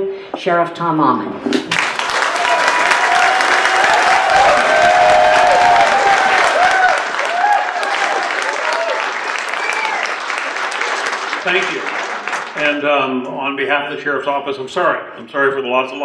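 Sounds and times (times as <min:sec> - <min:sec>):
audience applauding: 0:01.7 - 0:12.9.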